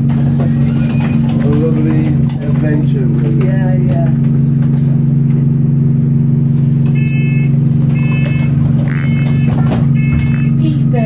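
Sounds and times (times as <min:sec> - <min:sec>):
bus diesel engine droning: 0:00.0 - 0:11.0.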